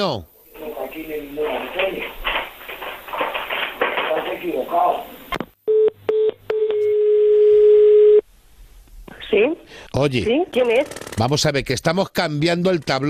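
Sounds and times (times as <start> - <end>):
voices over telephone line: 0.0 - 5.3, 9.1 - 10.9
steady telephone tone: 5.6 - 8.3.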